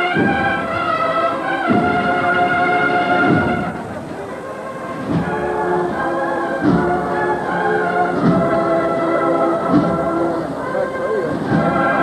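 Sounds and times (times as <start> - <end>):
band sustained chords: 0.0 - 12.0.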